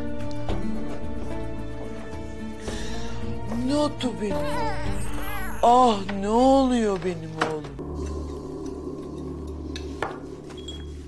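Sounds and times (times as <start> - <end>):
steady low drone: 7.8 - 11.0.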